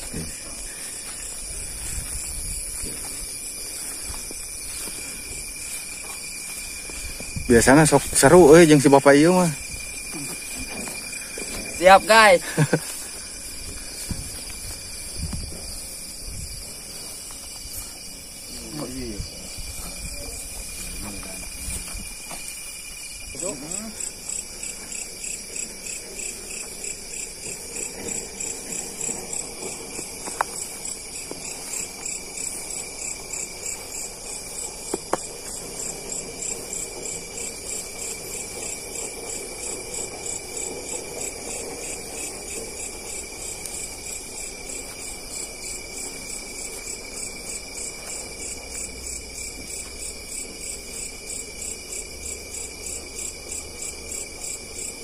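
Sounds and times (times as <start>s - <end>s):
crickets trilling: 0.0s - 55.0s.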